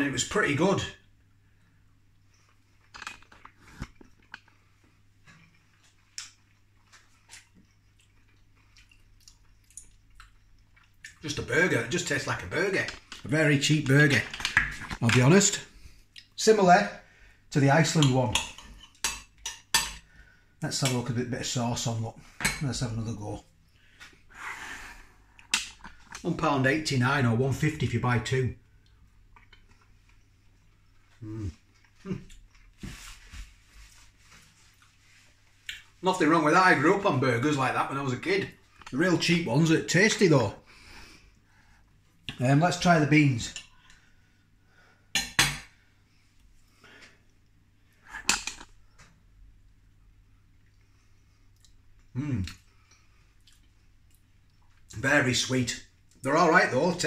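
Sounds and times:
quiet chewing: 1.5 - 11.2, 28.7 - 33.1, 46.4 - 55.0
chewing: 5.4 - 11.2, 50.5 - 55.0
man saying mm: 31.2 - 32.2, 52.2 - 52.6.

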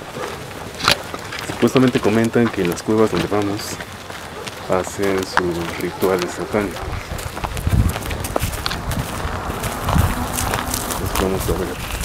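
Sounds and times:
footsteps on gravel: 0.1 - 12.0.

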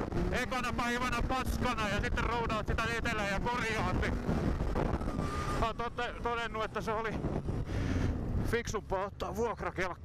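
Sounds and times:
snowmobile engine rumble: 0.0 - 9.8
wind buffeting microphone: 2.5 - 8.5.

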